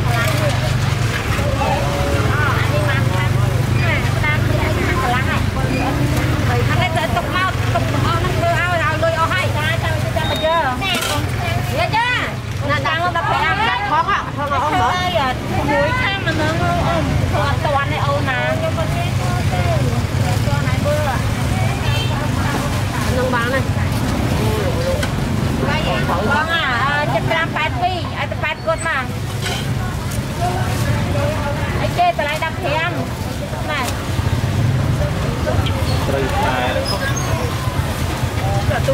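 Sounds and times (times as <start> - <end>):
people talking: 0.0 - 38.9.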